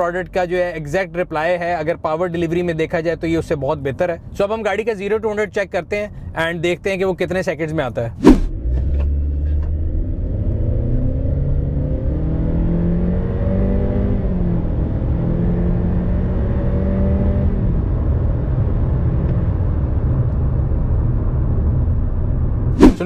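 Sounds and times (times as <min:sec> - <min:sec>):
road and tyre rumble: 0:07.9 - 0:23.0.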